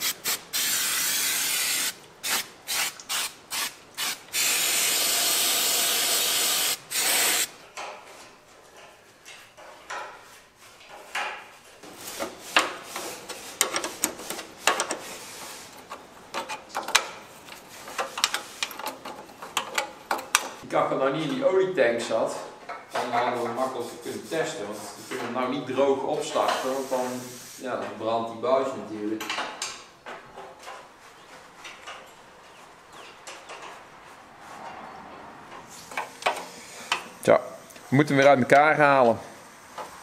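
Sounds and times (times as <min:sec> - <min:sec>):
aerosol can spraying: 0:00.0 - 0:07.5, 0:26.6 - 0:27.6
metal parts clicking and tapping: 0:13.6 - 0:15.1, 0:15.8 - 0:20.6.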